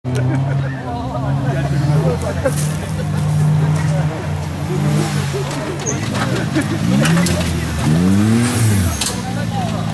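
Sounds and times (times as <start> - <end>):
off-road vehicle engine running: 0.1 - 9.9
people talking: 0.1 - 9.9.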